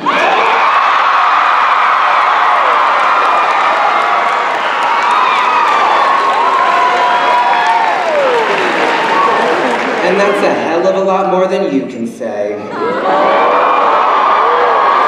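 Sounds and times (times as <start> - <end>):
audience whooping and shouting: 0.0 - 10.4, 12.7 - 15.0
audience clapping: 1.6 - 10.6.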